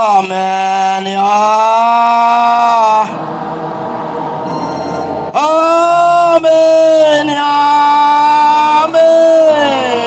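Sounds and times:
voices chanting a hymn: 0.0s - 10.0s.

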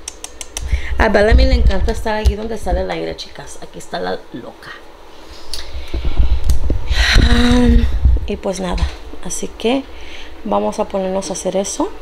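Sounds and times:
loud low rumble: 5.9s - 9.0s.

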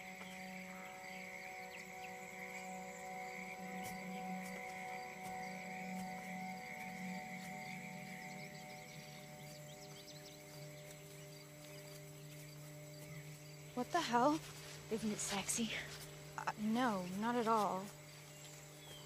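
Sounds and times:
film score drone music: 0.0s - 19.0s
high insect chirring: 0.0s - 19.0s
person speaking: 13.8s - 18.0s.

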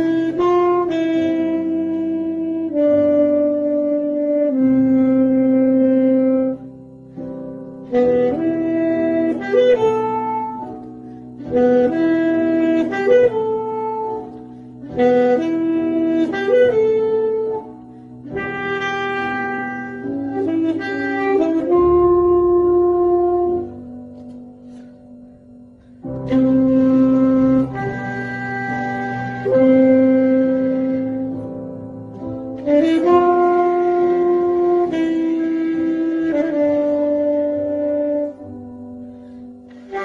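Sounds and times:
soft sustained accompaniment: 0.0s - 40.0s
solo wind instrument melody: 0.0s - 40.0s.

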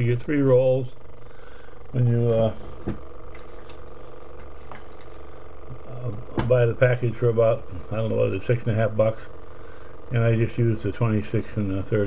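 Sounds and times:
pulse motor humming: 0.0s - 12.0s.

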